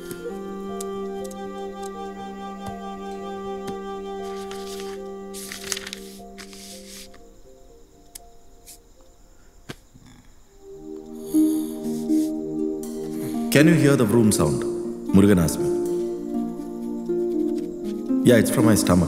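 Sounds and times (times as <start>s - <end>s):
sustained film score: 0.0s - 19.0s.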